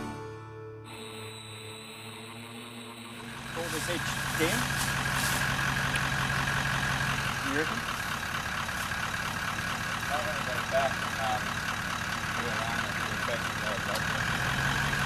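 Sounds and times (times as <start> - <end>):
engine running at low revs: 0.9 - 15.0.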